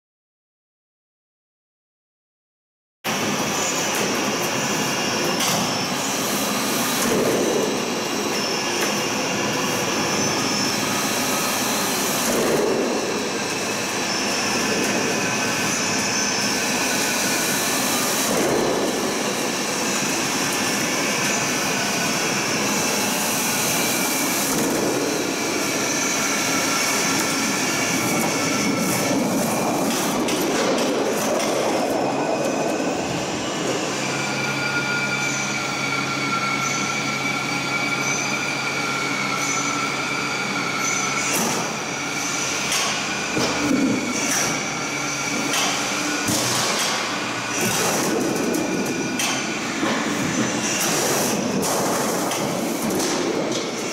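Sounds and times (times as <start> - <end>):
roll forming machine humming: 3.1 - 53.9.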